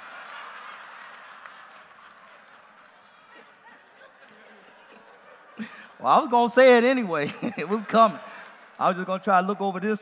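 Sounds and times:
congregation laughing: 0.0s - 9.9s
scattered claps: 0.6s - 3.0s.

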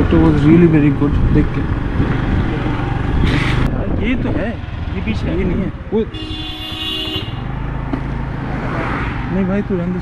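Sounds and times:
road noise: 0.0s - 10.0s
car passing: 6.6s - 10.0s.

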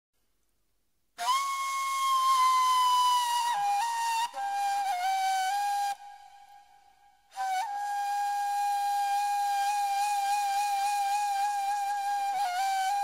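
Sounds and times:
breathy solo flute: 1.2s - 13.0s.

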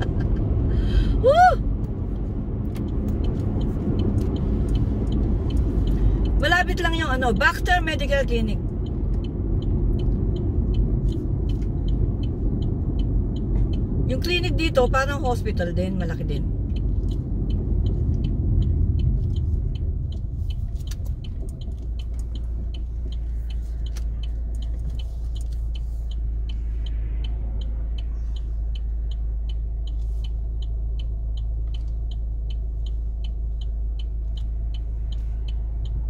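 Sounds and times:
car engine rumble: 0.0s - 36.0s
road noise: 0.0s - 36.0s
turn signal ticking: 0.0s - 36.0s.

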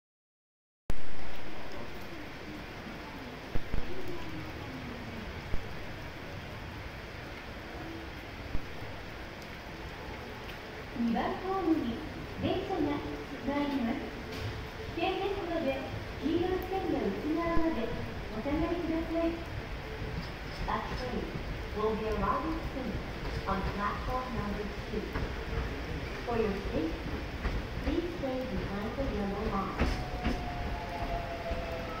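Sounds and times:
electric train whine and rumble: 0.9s - 32.0s
steady rain falling: 0.9s - 32.0s.

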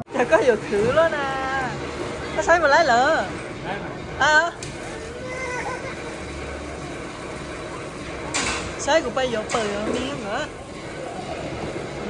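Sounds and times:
child squealing: 5.0s - 6.1s
young child laughing: 5.2s - 6.2s.

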